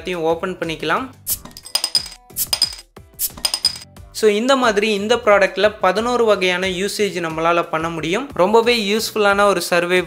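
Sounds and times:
background music: 0:00.0 - 0:10.0
bottle opener clinking on cap: 0:01.3 - 0:03.9.

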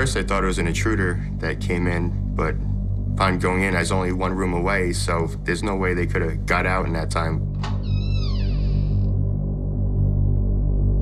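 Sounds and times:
low synthesizer drone: 0:00.0 - 0:11.0.

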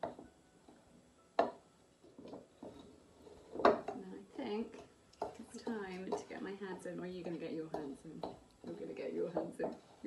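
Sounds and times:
metal spoon stirring dough: 0:02.0 - 0:10.0
spoon scraping bowl: 0:02.1 - 0:03.9, 0:07.2 - 0:10.0.

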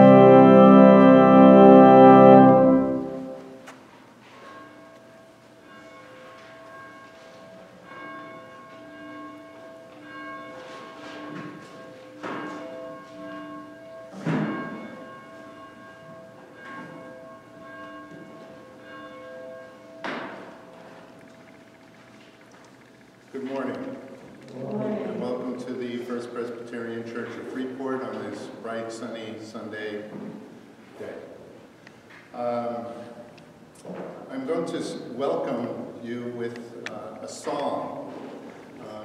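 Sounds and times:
church bell ringing: 0:00.0 - 0:24.4.

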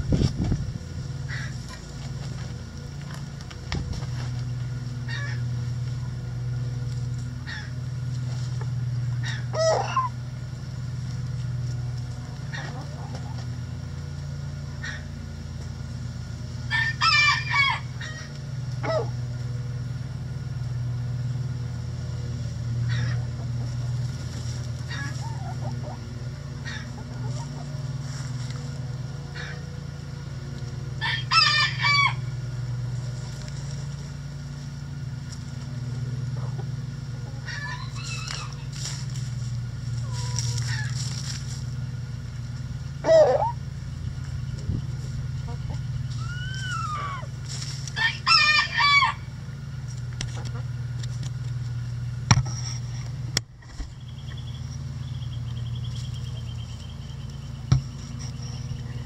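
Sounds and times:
steady low hum: 0:00.0 - 0:59.0
hens clucking: 0:09.1 - 0:10.3, 0:11.8 - 0:13.7, 0:22.8 - 0:29.8, 0:35.7 - 0:39.0, 0:39.9 - 0:41.3, 0:43.0 - 0:43.6, 0:44.2 - 0:49.3, 0:50.2 - 0:50.9
rooster crowing: 0:16.7 - 0:18.2, 0:31.0 - 0:32.4, 0:37.4 - 0:38.6, 0:47.9 - 0:49.3.

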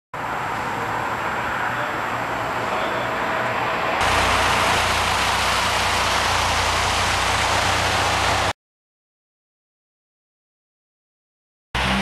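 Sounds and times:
car engine idling: 0:04.0 - 0:08.5.

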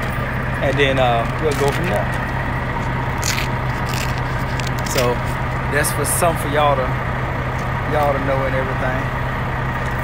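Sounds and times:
truck engine idling: 0:00.0 - 0:10.0
scraping and rustling: 0:03.2 - 0:05.4.

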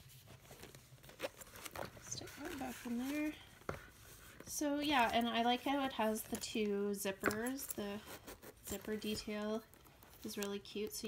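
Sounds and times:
paper rustling: 0:00.0 - 0:06.1.

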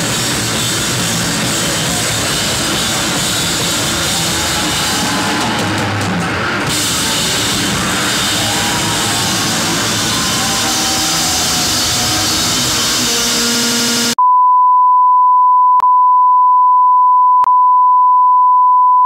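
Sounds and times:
loud rock music: 0:00.0 - 0:14.2.

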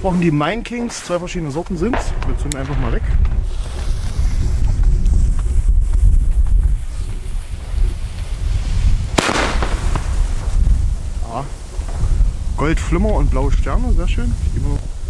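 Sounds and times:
wind rumble on microphone: 0:00.0 - 0:15.0
firework hissing: 0:03.2 - 0:12.6
firework bang: 0:09.1 - 0:10.8.

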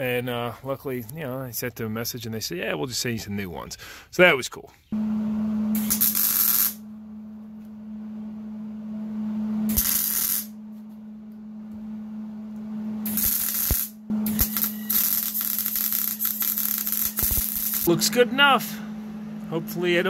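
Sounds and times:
welder arc sizzling and crackling: 0:05.8 - 0:06.8, 0:09.7 - 0:10.6, 0:13.0 - 0:18.6.

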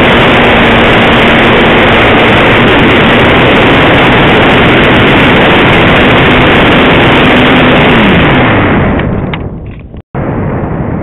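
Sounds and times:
distorted wind rush: 0:00.0 - 0:11.0
motor hum: 0:00.0 - 0:11.0.

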